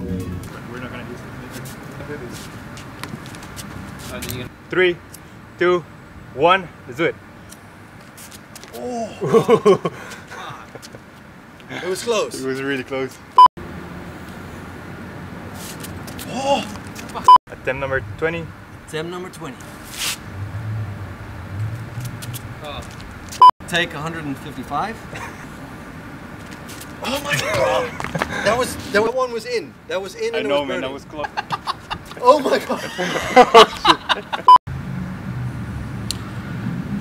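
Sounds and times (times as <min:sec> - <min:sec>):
distant traffic hum: 0:00.0 - 0:37.0.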